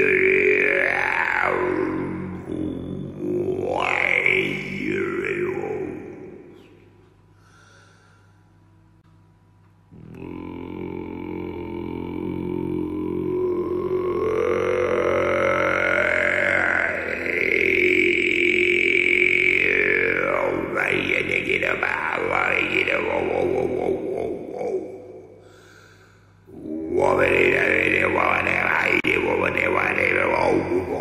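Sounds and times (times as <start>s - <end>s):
didgeridoo drone: 0.0s - 6.8s, 9.9s - 31.0s.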